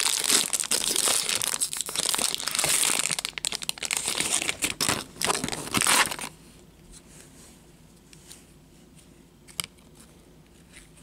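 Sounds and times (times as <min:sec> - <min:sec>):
foil wrapper crinkling: 0:00.0 - 0:06.3.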